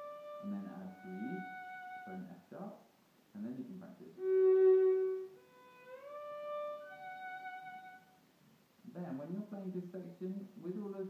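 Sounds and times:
violin sliding between notes: 0.0 - 2.3, 4.2 - 8.1.

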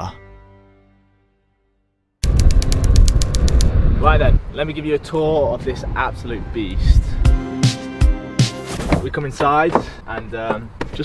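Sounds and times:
rapid rattle of clicks: 2.2 - 3.7.

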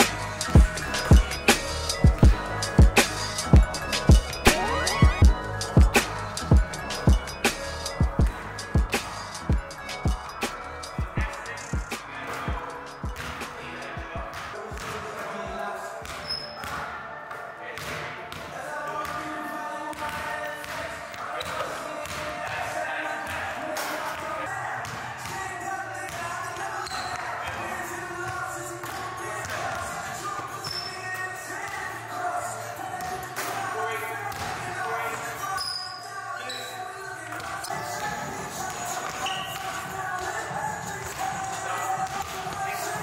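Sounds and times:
background music with vocals: 0.0 - 43.0.

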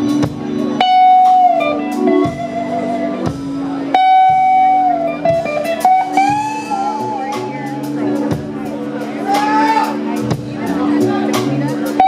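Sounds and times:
blues band playing: 0.0 - 12.0
electric guitar lead notes: 0.0 - 12.0.

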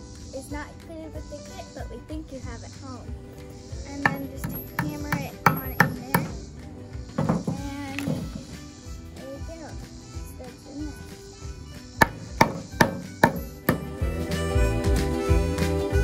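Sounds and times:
background music: 0.0 - 16.0
hammer tapping studs into wood: 4.0 - 6.4, 7.2 - 8.5, 12.0 - 14.0.

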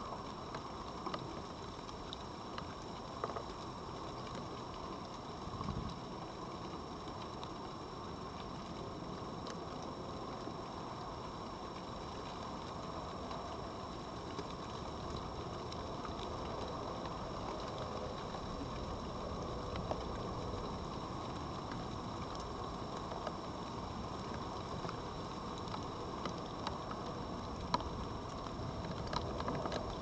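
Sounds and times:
faint clicks: 0.0 - 30.0
outdoor background hiss: 0.0 - 30.0.

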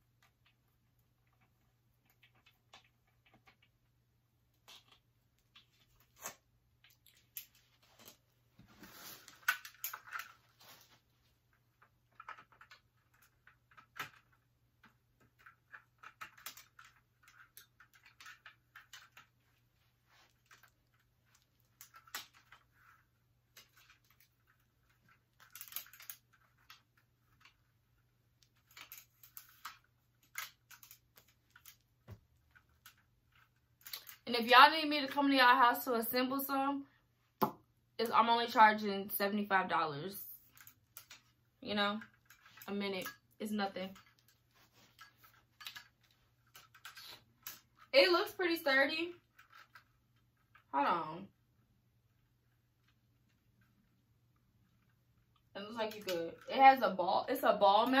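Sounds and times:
light stand clicks and rustles: 4.6 - 34.2, 40.4 - 47.9, 49.1 - 50.7.

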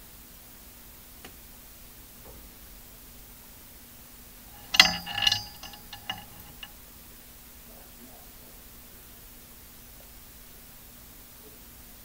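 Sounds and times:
light clinks of hard object: 4.6 - 6.7.

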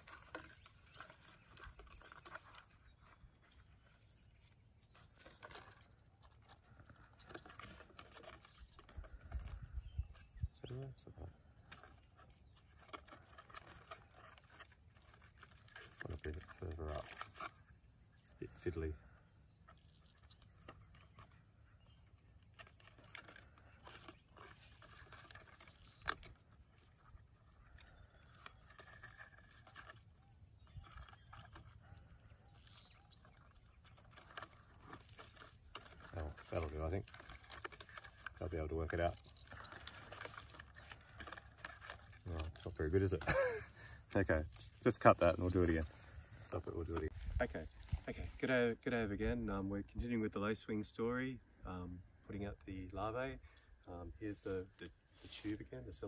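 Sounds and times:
string and cardboard handling: 0.0 - 49.0, 54.0 - 56.0.

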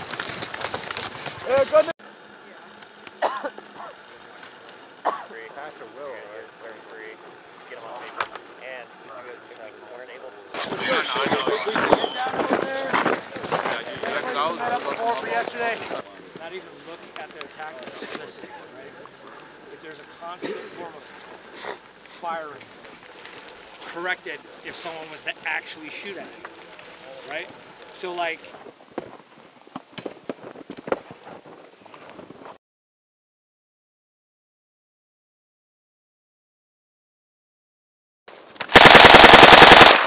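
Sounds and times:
men talking and calling out: 1.4 - 28.7.

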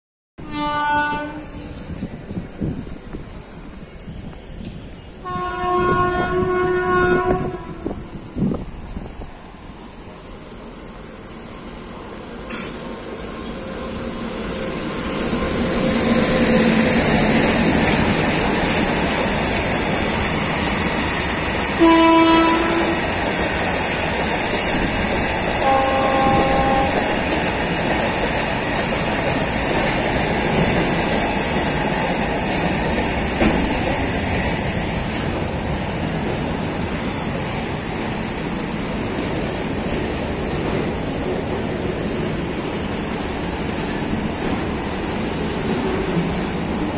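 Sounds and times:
train horn blast: 0.4 - 1.8, 5.2 - 8.3, 21.8 - 23.1, 25.6 - 27.2
freight train rumbling past: 0.4 - 46.9.

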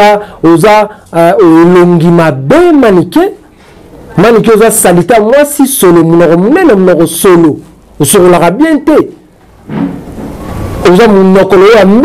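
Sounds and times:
man talking: 0.0 - 3.4, 4.2 - 9.2, 10.8 - 12.0.

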